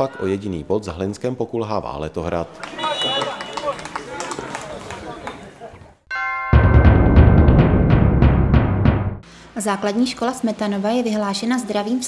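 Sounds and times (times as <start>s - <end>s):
players shouting and calling out: 2.5s - 6.0s.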